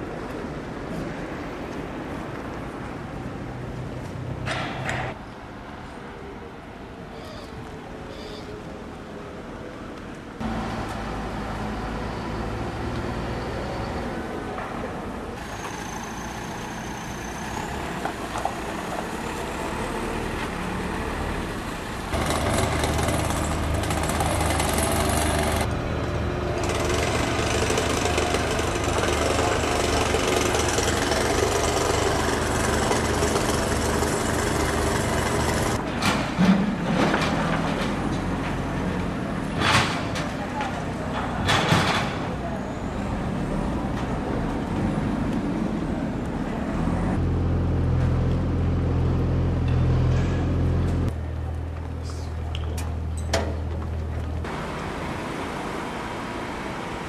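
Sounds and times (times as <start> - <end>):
heavy engine running: 10.4 - 57.0.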